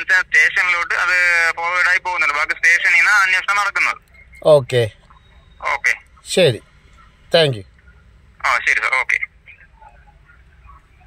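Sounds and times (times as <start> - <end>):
man speaking short words: 7.3 - 7.6.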